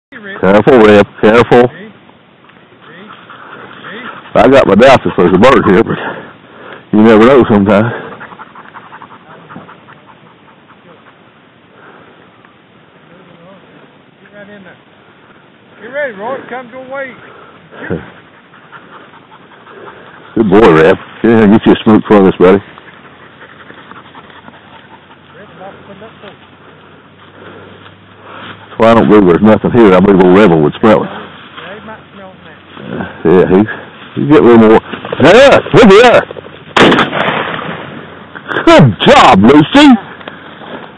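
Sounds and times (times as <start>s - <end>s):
dog panting: 2.4s - 12.4s, 16.2s - 36.6s
shotgun shot: 36.8s - 38.0s.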